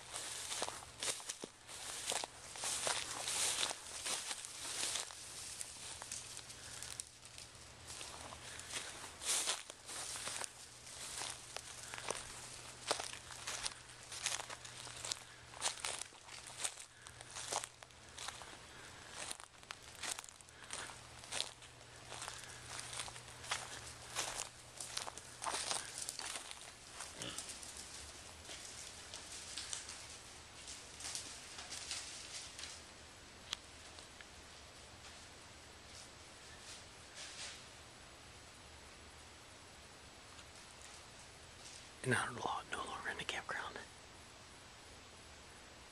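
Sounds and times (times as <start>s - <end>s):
crunching through dry leaves: 0.0s - 32.9s
steady low hum: 0.0s - 45.9s.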